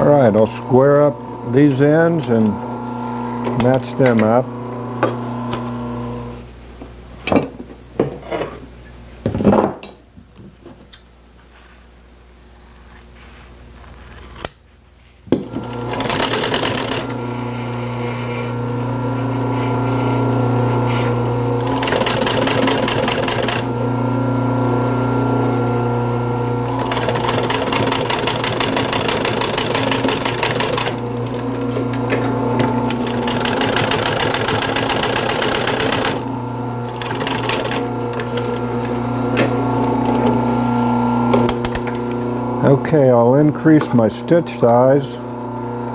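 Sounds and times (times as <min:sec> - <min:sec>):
motor hum: 0:15.3 - 0:45.9
sewing machine stitching: 0:15.4 - 0:18.5, 0:20.8 - 0:23.8, 0:26.7 - 0:40.4.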